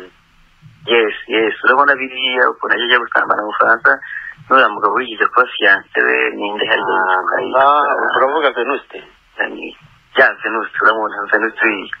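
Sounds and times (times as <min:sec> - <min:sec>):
person talking: 0:00.0 - 0:12.0.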